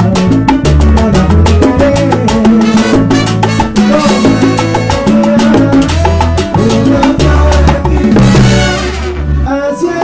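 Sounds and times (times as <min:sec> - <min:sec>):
bongos struck by hand: 0:00.0 - 0:09.0
salsa band playing: 0:00.0 - 0:10.0
trumpets: 0:02.6 - 0:05.6, 0:08.2 - 0:10.0.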